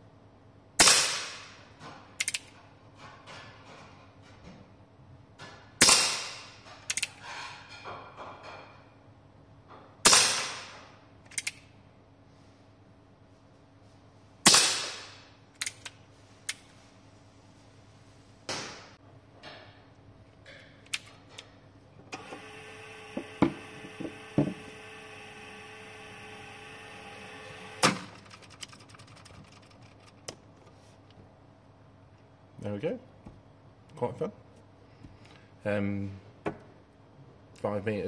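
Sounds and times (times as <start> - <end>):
hammer cocking clicks: 11.3 - 11.6
motor stopping clunk: 22.1 - 28.3.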